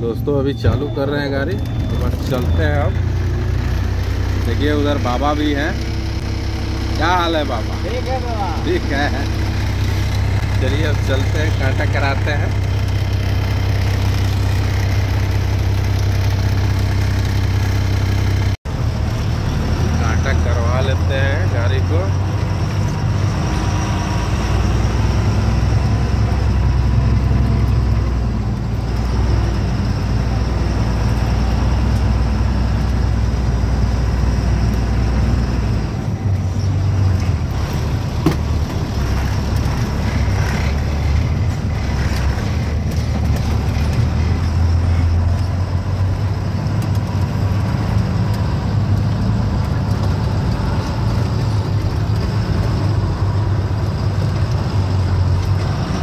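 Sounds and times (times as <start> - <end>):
truck diesel engine droning: 0.0 - 56.0.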